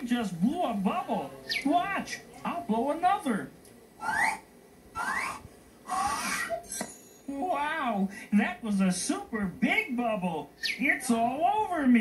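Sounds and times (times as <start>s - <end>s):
rising whistle-like tone: 4.0s - 6.8s.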